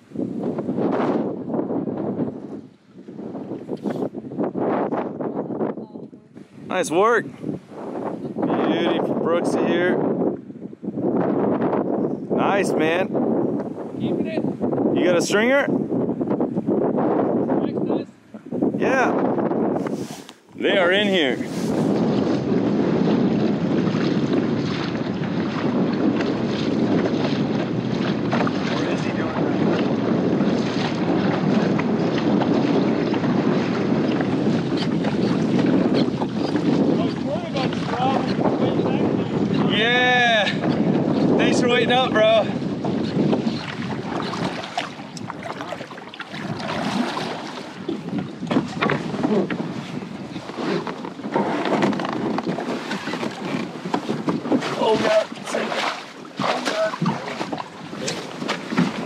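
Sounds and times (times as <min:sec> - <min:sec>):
water washing along kayak hull: 0:00.0 - 0:05.7, 0:06.3 - 0:59.0
wind buffeting microphone: 0:00.0 - 0:59.0.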